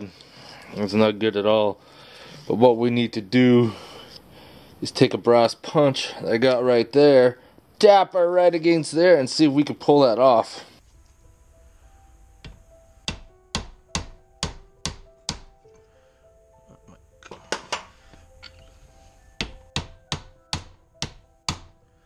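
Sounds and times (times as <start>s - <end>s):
background music: 9.4s - 22.0s
hammer striking metal punch: 13.1s - 15.5s, 19.4s - 21.7s.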